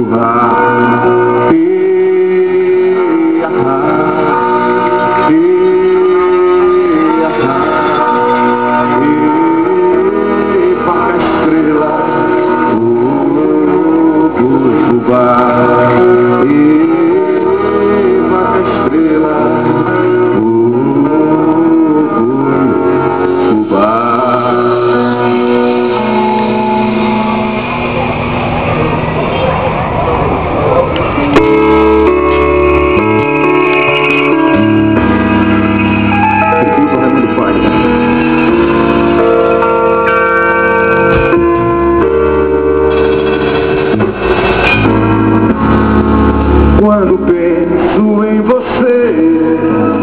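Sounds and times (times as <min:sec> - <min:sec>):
crowd noise: 0:00.0 - 0:50.0
keyboard sustained chords: 0:00.0 - 0:50.0
live band through loud pa: 0:00.0 - 0:50.0
wavering bending melody line: 0:31.4 - 0:46.8.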